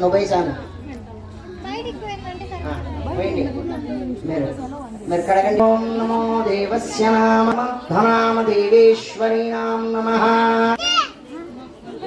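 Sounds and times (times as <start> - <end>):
crowd chattering: 0.0 - 12.0
children's voices: 0.9 - 5.4, 10.7 - 12.0.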